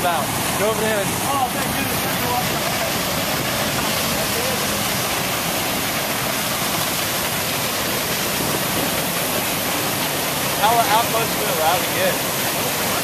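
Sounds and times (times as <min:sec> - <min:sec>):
waterfall rushing: 0:00.0 - 0:13.0.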